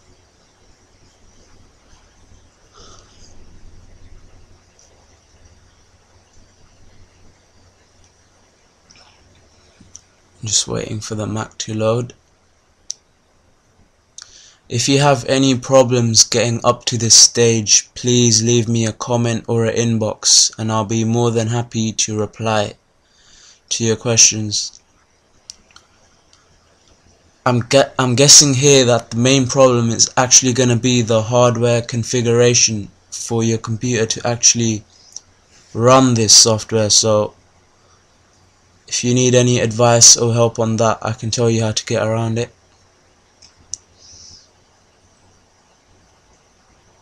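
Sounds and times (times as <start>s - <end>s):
faint room noise: 0.0s - 47.0s
low background noise: 0.0s - 47.0s.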